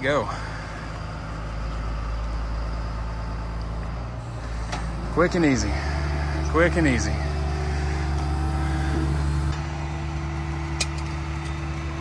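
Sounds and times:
diesel truck engine running: 0.0s - 12.0s.

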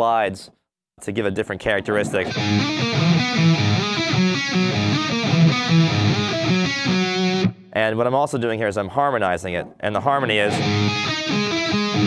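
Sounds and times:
electric guitar metal riff: 2.2s - 7.7s, 10.4s - 12.0s.

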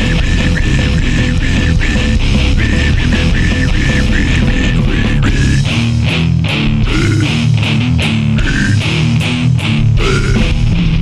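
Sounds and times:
distorted electric guitar riff: 0.0s - 11.0s
drums: 0.0s - 11.0s.

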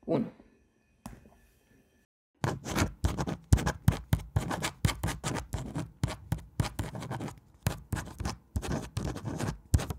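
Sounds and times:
pen scratching on paper: 2.4s - 9.9s.

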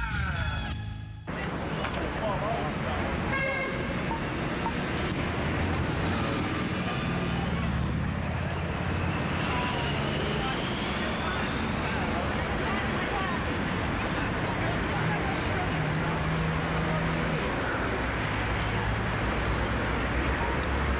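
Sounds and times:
indistinct voices of passersby: 0.0s - 20.9s
traffic hum: 0.0s - 20.9s.

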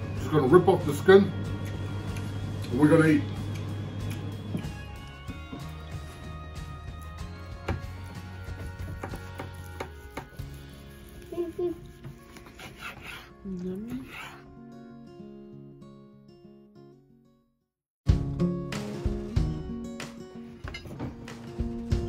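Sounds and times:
background music: 0.0s - 16.3s, 18.1s - 22.0s
knife slicing roast meat: 7.7s - 13.3s, 13.9s - 14.4s
knife knocking on cutting board: 8.8s - 10.3s.

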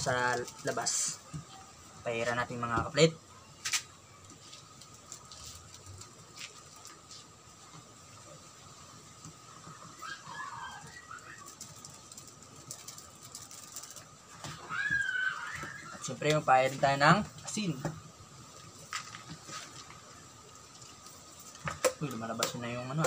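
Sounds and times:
bird calls: 9.6s - 11.9s.

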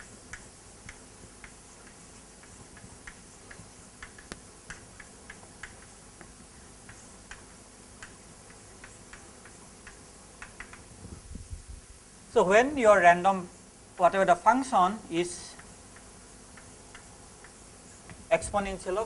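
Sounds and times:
chalk tapping on blackboard: 0.0s - 10.9s, 15.6s - 18.3s.

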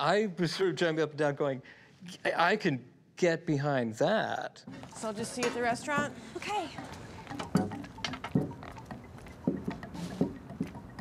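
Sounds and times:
footsteps on pavement: 7.8s - 11.0s.

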